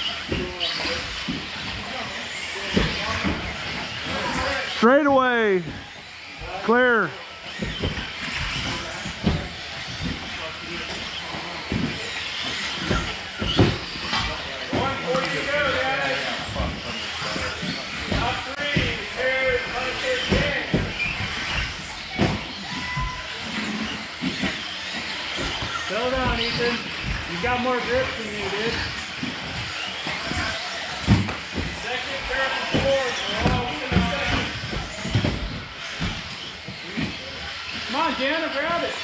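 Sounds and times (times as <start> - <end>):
rc car motor whine: 0.0 - 39.0
rc cars knocking: 0.0 - 39.0
voices in hall: 0.0 - 39.0.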